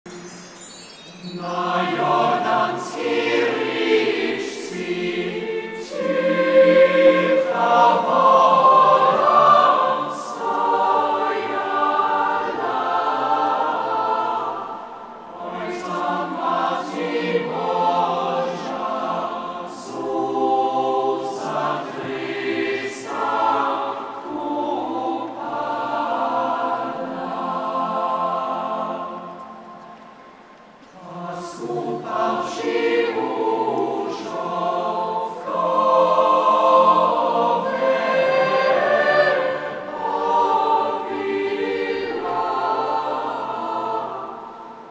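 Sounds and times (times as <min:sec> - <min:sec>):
choir singing a carol: 0:00.1 - 0:44.9.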